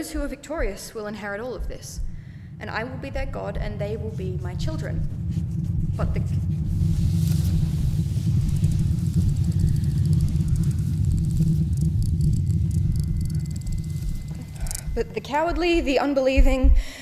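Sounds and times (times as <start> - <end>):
low rumbling drone: 1.3 - 17.0
faint crackling hiss: 2.1 - 16.1.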